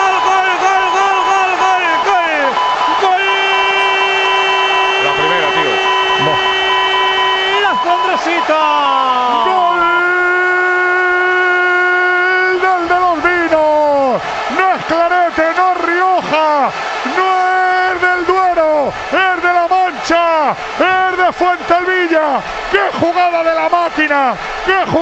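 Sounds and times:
commentator shouting goal cry: 0:00.0 - 0:25.0.

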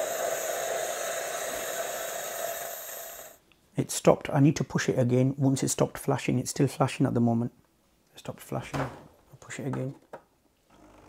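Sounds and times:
coffee machine pump hissing: 0:00.0 - 0:03.4.

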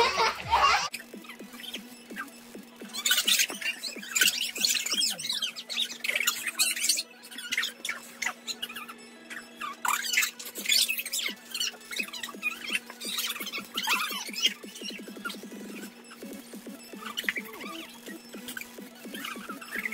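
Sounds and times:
children squealing and laughing: 0:00.0 - 0:19.9.

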